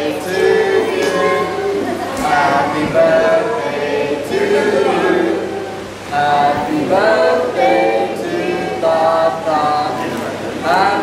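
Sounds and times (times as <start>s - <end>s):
group singing in unison: 0.0s - 11.0s.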